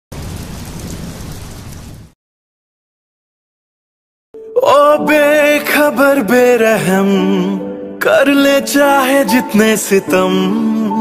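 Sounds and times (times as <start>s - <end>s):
steady rain: 0.1s - 2.2s
thunder rumbling: 0.1s - 2.2s.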